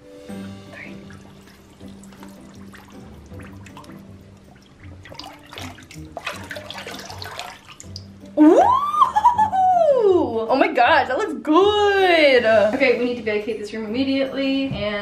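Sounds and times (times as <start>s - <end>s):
soft background music with beat: 0.0s - 15.0s
water sloshing in plastic tub: 0.8s - 8.3s
woman exclaiming ooh: 8.4s - 10.5s.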